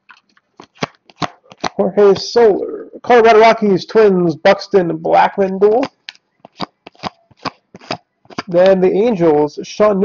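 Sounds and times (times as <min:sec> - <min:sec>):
cards flicking: 0:00.6 - 0:02.3, 0:05.7 - 0:08.8.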